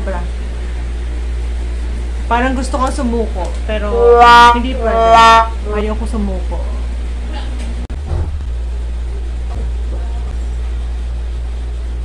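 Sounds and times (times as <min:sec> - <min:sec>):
steady low hum: 0:00.0 - 0:07.6.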